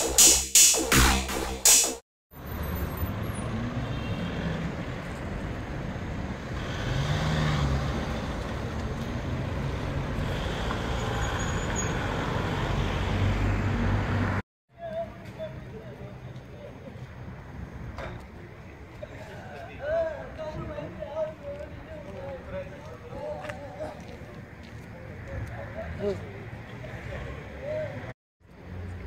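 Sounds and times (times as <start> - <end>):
short electronic jingle: 0.0 - 2.0
outdoor noise: 0.0 - 29.0
street traffic noise: 2.3 - 29.0
van engine driving past: 5.4 - 14.4.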